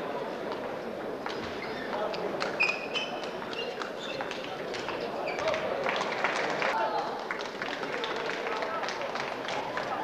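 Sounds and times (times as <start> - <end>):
murmur of spectators talking: 0.0 - 10.0.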